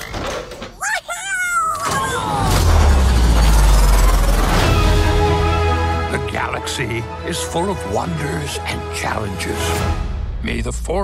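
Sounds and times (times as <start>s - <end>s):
cartoon creature squealing cry: 0.8s - 2.6s.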